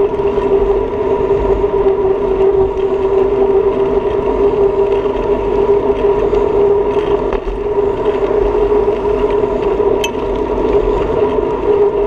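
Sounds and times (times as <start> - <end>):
bicycle rolling on asphalt: 0.0 - 12.0
wind rumble on microphone: 0.0 - 12.0.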